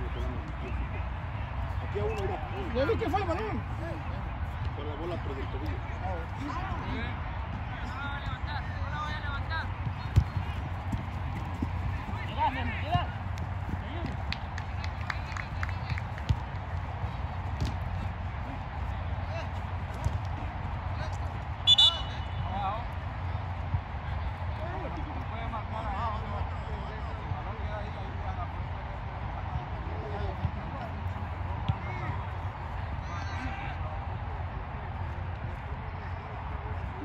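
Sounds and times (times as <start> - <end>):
players calling: 0.0 - 26.9
ball being kicked: 9.8 - 12.1, 17.2 - 18.2, 19.7 - 20.4
referee's whistle blast: 21.6 - 22.4.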